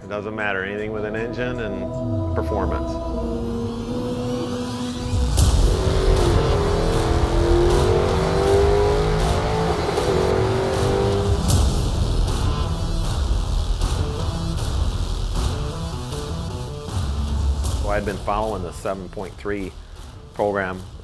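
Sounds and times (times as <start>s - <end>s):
drag car engine revving: 3.6s - 13.3s.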